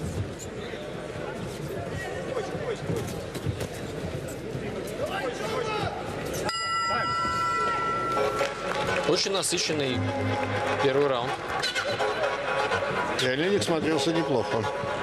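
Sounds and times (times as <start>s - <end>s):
steady signal tone: 9.9s - 11.5s.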